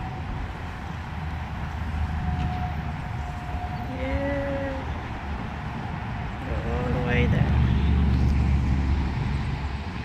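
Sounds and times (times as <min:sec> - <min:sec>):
car passing: 0:00.0 - 0:10.0.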